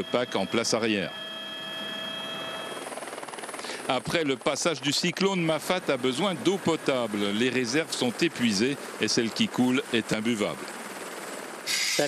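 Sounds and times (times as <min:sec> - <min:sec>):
helicopter engine and rotor noise: 0:00.0 - 0:12.0
high-pitched helicopter whine: 0:00.0 - 0:12.0.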